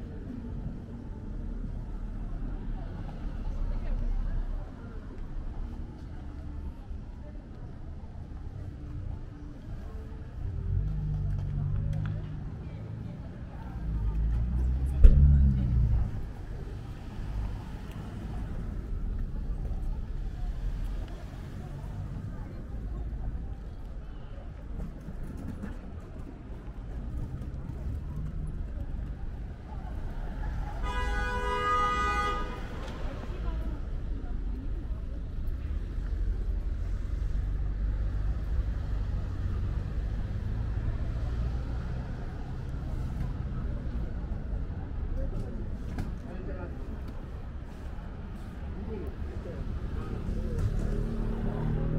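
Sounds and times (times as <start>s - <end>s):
pedestrians' voices: 0.0s - 51.9s
traffic rumble: 0.0s - 51.9s
car horn: 30.8s - 32.8s.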